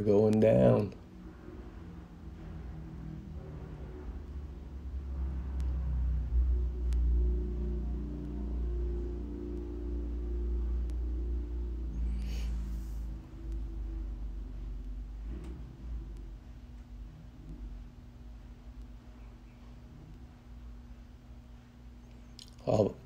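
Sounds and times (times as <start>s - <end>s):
low background rumble: 0.0s - 23.0s.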